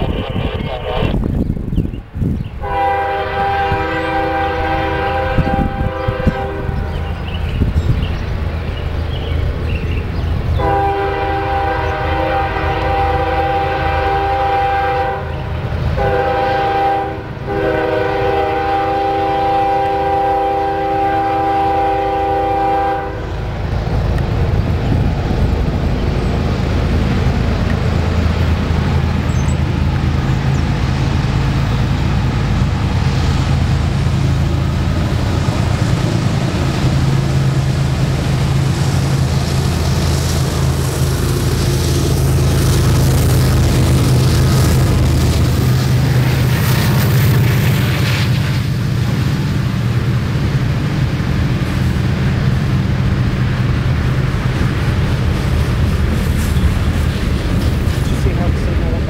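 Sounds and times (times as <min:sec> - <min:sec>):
diesel locomotive engine rumbling: 0:00.0 - 0:59.0
locomotive air horn blasts: 0:02.6 - 0:07.1, 0:10.6 - 0:15.4, 0:16.0 - 0:23.3.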